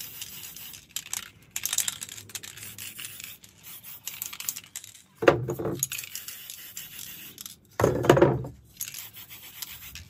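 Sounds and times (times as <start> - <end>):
spray paint can hissing: 0.0 - 5.0, 5.8 - 7.6, 8.7 - 10.0
metallic rattle of spray can: 0.0 - 7.8, 8.6 - 10.0.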